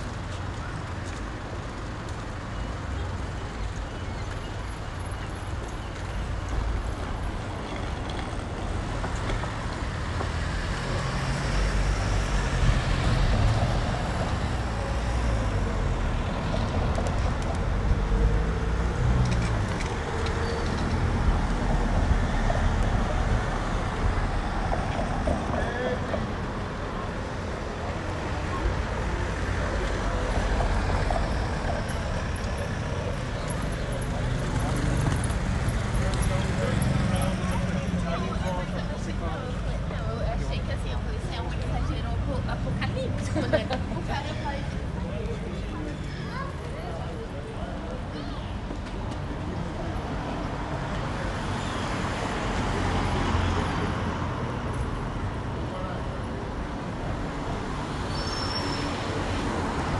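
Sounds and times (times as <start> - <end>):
street traffic: 0.0 - 59.9
voices of passers-by: 0.0 - 59.9.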